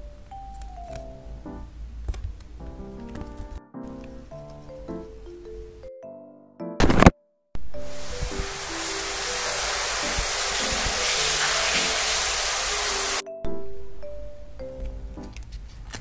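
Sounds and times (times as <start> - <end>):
background music with simple melody: 0.0 - 15.6
shower running: 7.8 - 13.2
paper handling clicks and rustles: 15.3 - 16.0.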